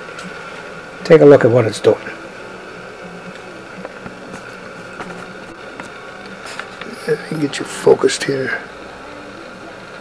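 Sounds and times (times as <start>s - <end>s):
electronic hum and hiss: 0.0s - 10.0s
faint steady tones: 0.0s - 10.0s.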